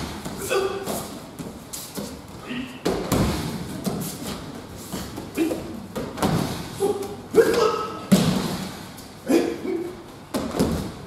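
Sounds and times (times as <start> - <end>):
short shouts: 6.8 - 8.0.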